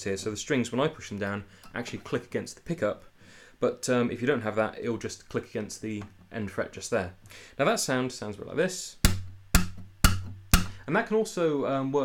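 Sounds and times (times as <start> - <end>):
guitar string percussive clicks: 9.0 - 10.9.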